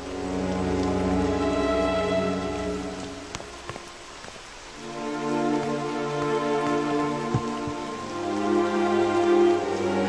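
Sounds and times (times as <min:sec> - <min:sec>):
soft background music: 0:00.0 - 0:10.0
steady hiss like rain: 0:00.0 - 0:10.0.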